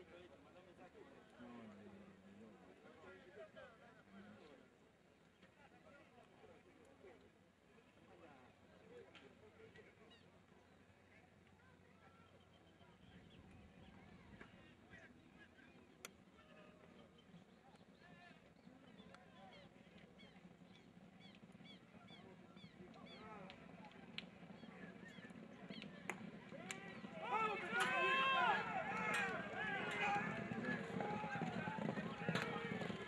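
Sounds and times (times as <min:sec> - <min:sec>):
crowd shouting and cheering: 0:25.8 - 0:33.0.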